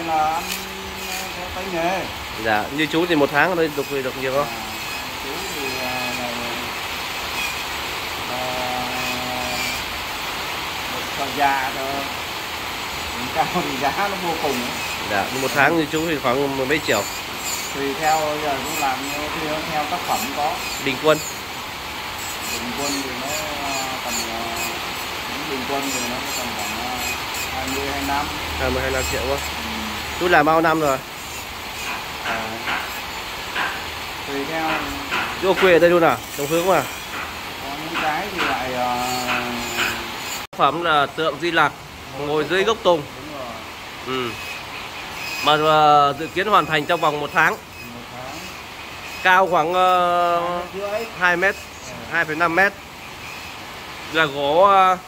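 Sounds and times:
rotary tool whirring on wood: 0.0 - 10.0, 13.2 - 40.5, 44.1 - 53.7.

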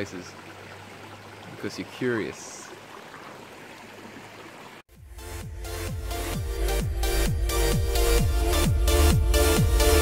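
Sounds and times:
creek water running over rocks: 0.0 - 4.9.

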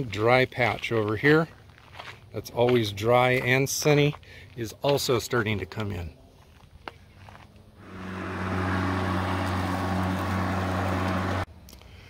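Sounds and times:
lawn mower humming: 7.8 - 11.5.

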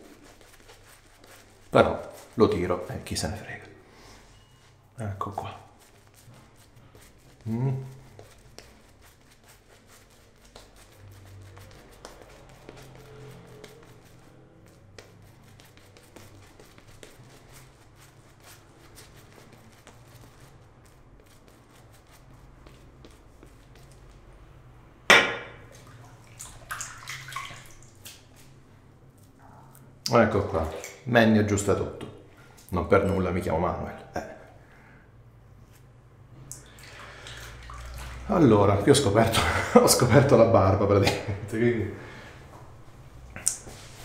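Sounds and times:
shaving brush wet crackling: 0.0 - 3.8, 5.1 - 24.5, 25.6 - 32.0, 36.5 - 41.5.

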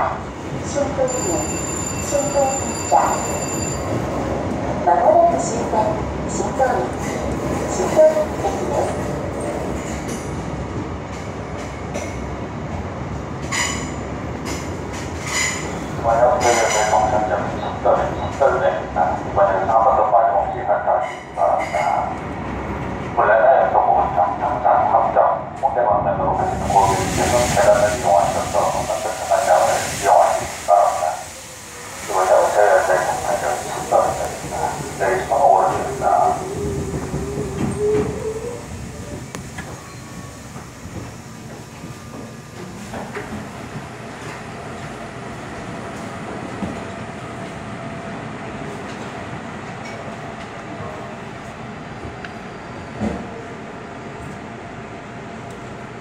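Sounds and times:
subway train braking: 0.0 - 56.0
stopped train humming: 26.3 - 56.0.

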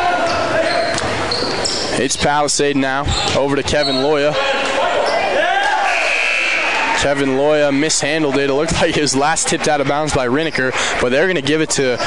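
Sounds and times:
referee's whistle: 5.8 - 6.8.

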